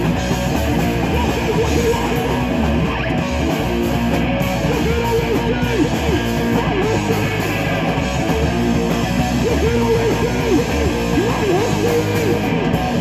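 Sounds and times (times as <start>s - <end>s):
bent electric guitar notes: 0.0s - 13.0s
live rock band playing: 0.0s - 13.0s.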